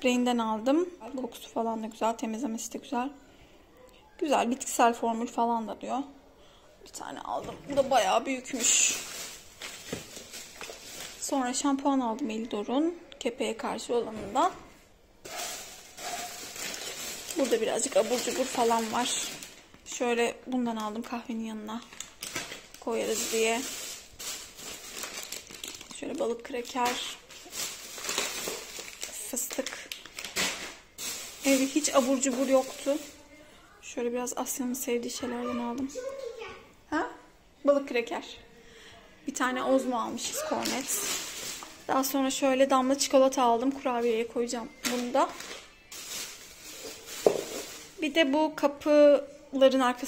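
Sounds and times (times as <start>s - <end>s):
plastic bag rustling: 7.4s - 11.8s, 15.2s - 33.4s, 39.7s - 48.3s
snack packet crinkling: 8.5s - 11.3s, 15.3s - 19.8s, 21.8s - 33.2s, 40.6s - 41.9s, 44.8s - 48.0s.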